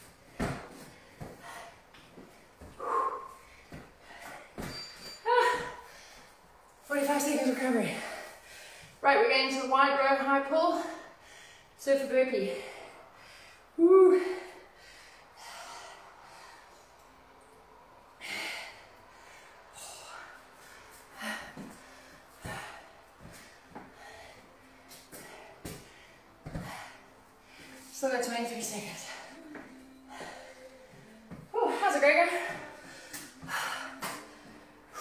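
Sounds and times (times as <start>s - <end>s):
sharp exhaled breaths: 0.7s - 6.5s
woman grunting with effort: 5.2s - 5.9s.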